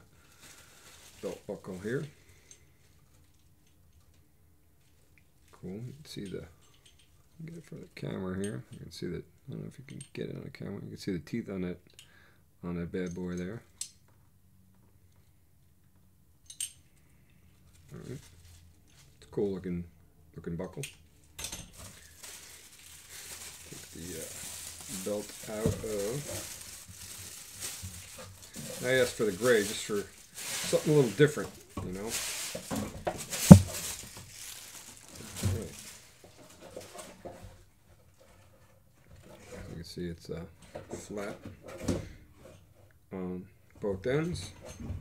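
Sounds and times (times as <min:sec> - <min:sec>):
belt webbing rustling: 0:21.6 - 0:37.2.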